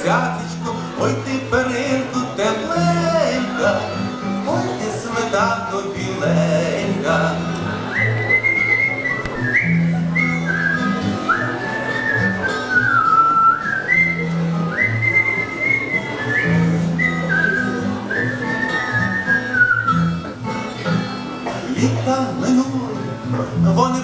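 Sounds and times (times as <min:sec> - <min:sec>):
strummed acoustic guitar: 0:00.0 - 0:24.0
man whistling a melody: 0:07.8 - 0:20.3.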